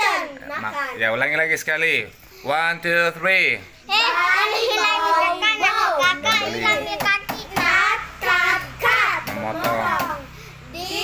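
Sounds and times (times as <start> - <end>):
girls chanting: 0.0 - 0.8, 3.8 - 11.0.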